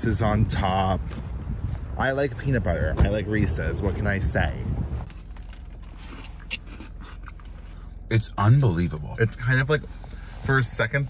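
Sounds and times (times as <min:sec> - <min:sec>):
car cabin hum: 0:04.8 - 0:11.0
mouth sounds tasting: 0:05.2 - 0:07.9.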